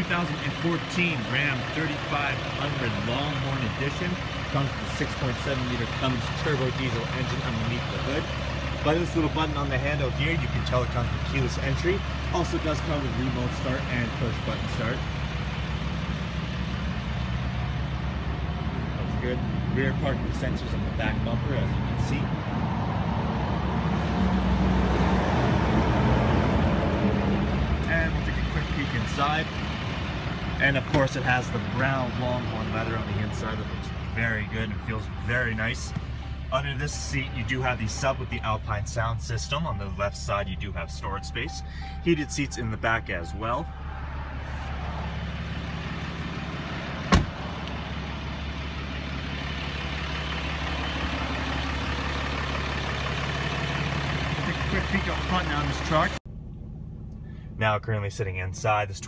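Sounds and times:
diesel engine idling: 0.0 - 59.0
vehicle door slamming: 47.0 - 47.6.

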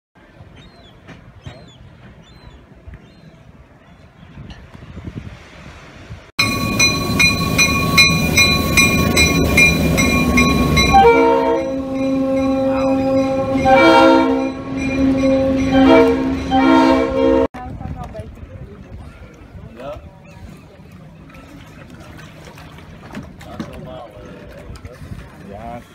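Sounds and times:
faint shore ambience: 0.2 - 25.9
train rumbling past: 3.5 - 18.2
locomotive air horn chord: 6.5 - 17.5.

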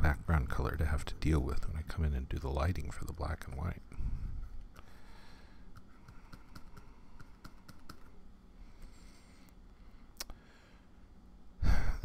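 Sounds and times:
faint click: 10.2 - 10.4.

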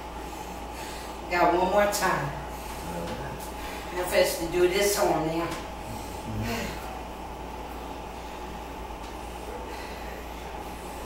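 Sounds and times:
room hum and hiss: 0.0 - 11.0.

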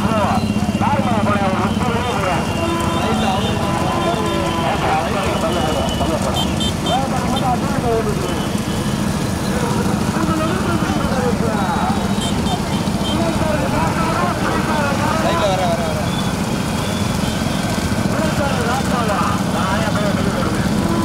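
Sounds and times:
crowd shouting: 0.0 - 21.0
motorcycle engines running: 0.0 - 21.0.

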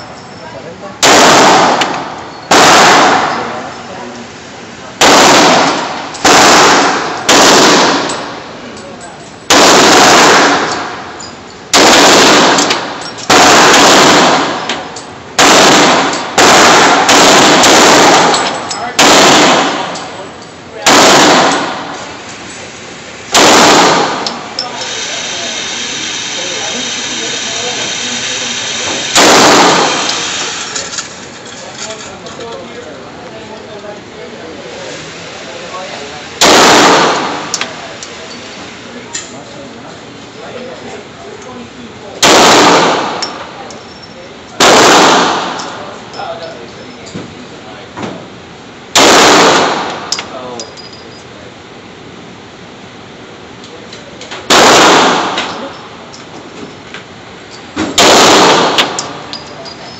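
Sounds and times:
pistol shots echoing indoors: 1.0 - 3.6, 5.0 - 8.4, 9.5 - 11.0, 11.7 - 20.1, 20.8 - 22.1, 23.3 - 24.4, 29.1 - 30.2, 36.4 - 37.6, 42.2 - 43.4, 44.6 - 45.8, 48.9 - 50.2, 54.5 - 55.8, 57.8 - 59.1
steady hiss: 24.0 - 30.9.

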